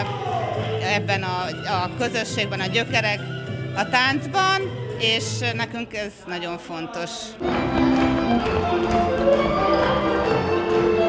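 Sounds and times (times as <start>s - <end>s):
folk dance music on strings: 7.4s - 11.0s.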